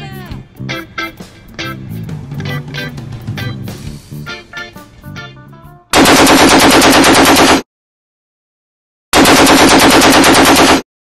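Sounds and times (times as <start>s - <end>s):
rapid-fire staccato bursts: 6.0s - 7.6s, 9.2s - 10.8s.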